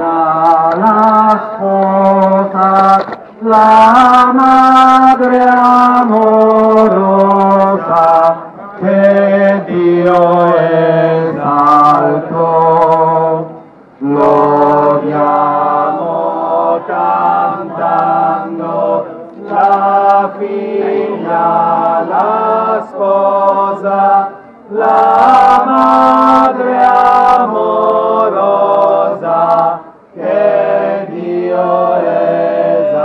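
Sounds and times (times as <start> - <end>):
voices singing a slow hymn: 0.0 - 33.0.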